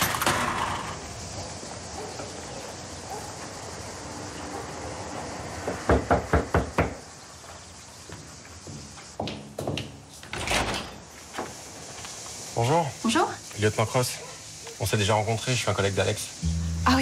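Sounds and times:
knocks on wooden door: 5.7 - 7.0
door latch and opening: 10.2 - 11.0.

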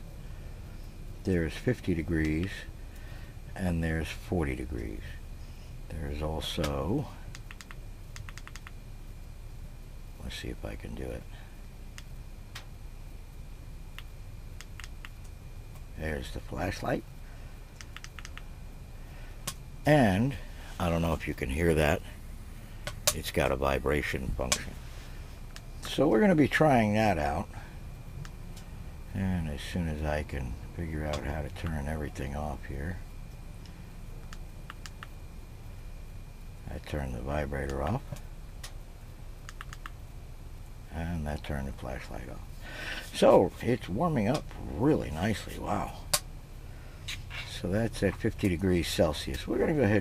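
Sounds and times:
low steady rumble: 0.0 - 50.0
steady low hum: 0.0 - 50.0.

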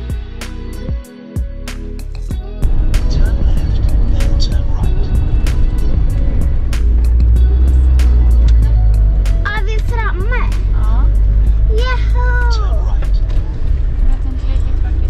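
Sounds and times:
music playing: 0.0 - 15.0
road and engine rumble: 0.0 - 15.0.

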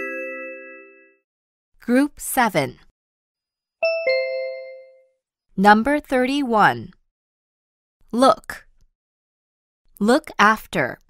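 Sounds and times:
rising bell-like chime: 0.0 - 1.2, 3.8 - 5.1.

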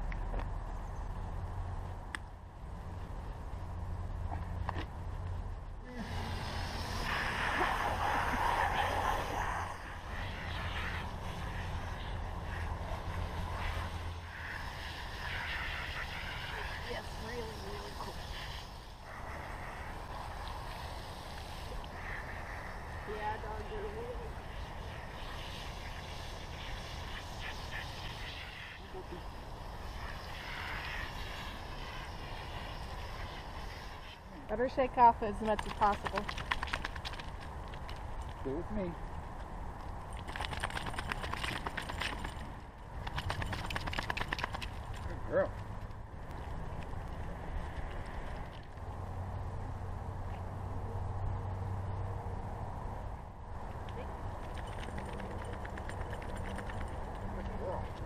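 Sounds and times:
hose water spraying and splashing: 5.9 - 37.6.

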